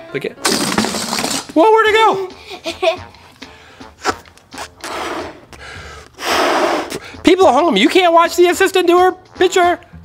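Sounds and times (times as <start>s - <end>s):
person's sharp breath: 3.2s - 7.2s.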